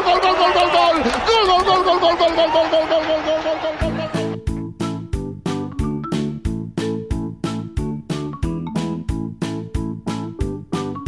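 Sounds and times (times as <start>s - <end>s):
keyboard tune: 3.9s - 11.0s.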